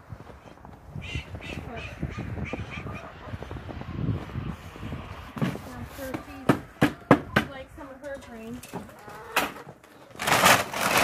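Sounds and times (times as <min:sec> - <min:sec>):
bird harsh calls: 0:00.9 - 0:03.5.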